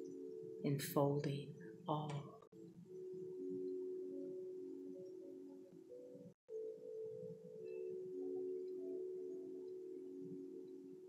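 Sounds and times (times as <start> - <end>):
ambient bell-like music: 0.0 - 11.0.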